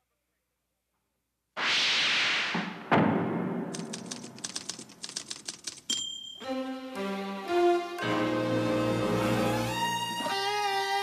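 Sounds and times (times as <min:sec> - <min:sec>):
loud rushing whoosh: 0:01.6 - 0:04.4
typewriter keystrokes: 0:03.7 - 0:06.1.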